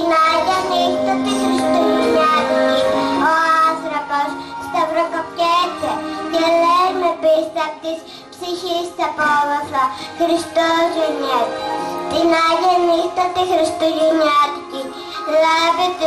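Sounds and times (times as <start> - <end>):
girl singing into a microphone: 0.0 - 16.0
musical accompaniment: 0.0 - 16.0.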